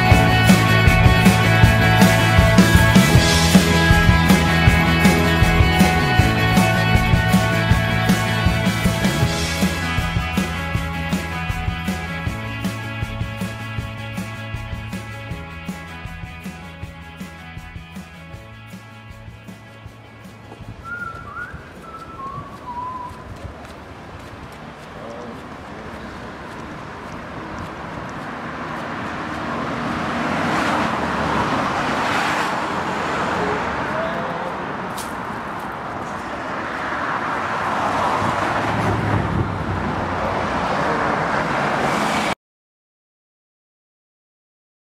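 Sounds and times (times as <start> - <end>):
passing cars: 0.0 - 42.4
deep rumble of passing vehicle: 19.2 - 42.4
person whistling wavering notes: 20.8 - 23.2.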